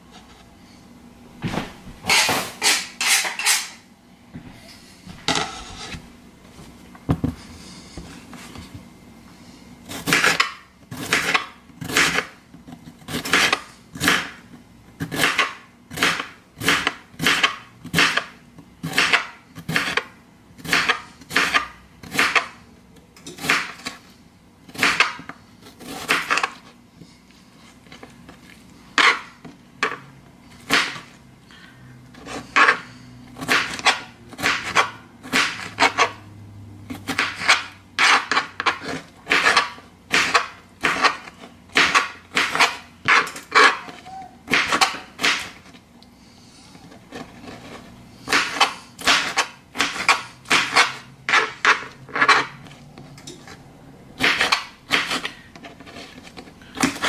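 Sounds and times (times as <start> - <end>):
knife slicing cucumber: 9.9 - 12.3, 36.9 - 45.7, 54.2 - 57.0.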